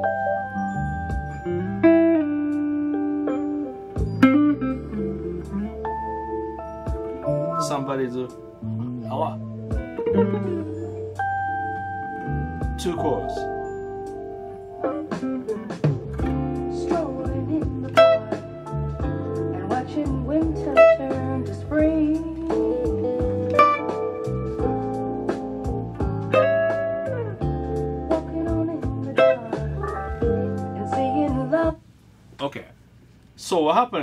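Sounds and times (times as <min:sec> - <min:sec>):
bass line: 0:00.0 - 0:31.8
clean electric guitar: 0:00.0 - 0:31.8
keyboard chords: 0:00.0 - 0:31.8
soul jazz ballad: 0:00.0 - 0:32.3.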